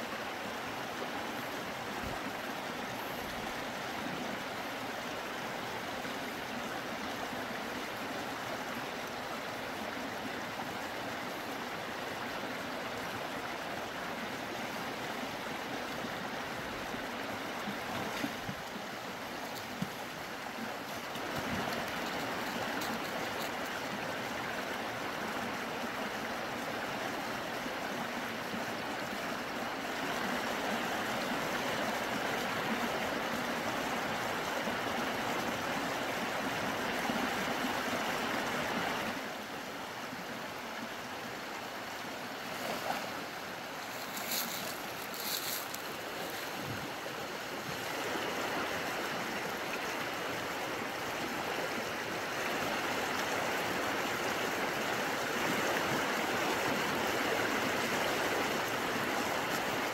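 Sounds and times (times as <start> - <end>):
stream rushing over rocks: 0.0 - 59.9.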